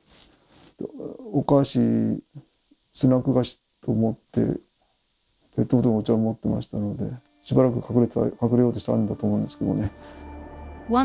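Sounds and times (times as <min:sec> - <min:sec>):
man speaking: 0:00.8 - 0:04.7, 0:05.6 - 0:10.0.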